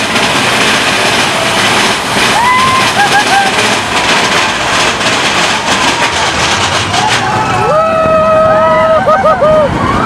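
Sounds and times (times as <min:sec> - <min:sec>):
roller coaster clatter: 0:00.0 - 0:10.0
roller coaster rolling and rattling: 0:00.0 - 0:10.0.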